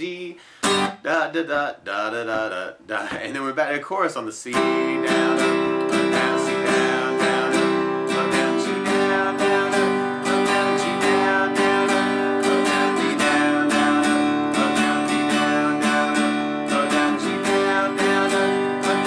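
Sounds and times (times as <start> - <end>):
acoustic guitar strumming: 0.0 - 2.6, 4.5 - 19.0.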